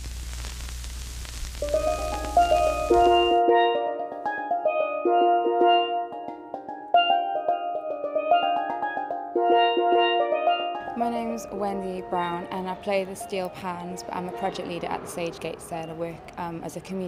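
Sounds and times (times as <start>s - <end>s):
steel pans playing melody: 1.6s - 16.1s.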